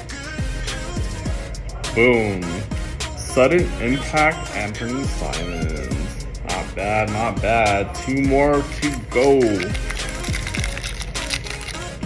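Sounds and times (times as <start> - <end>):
background music: 0.0 - 12.0
foil wrapper crinkling and tearing: 8.7 - 12.0.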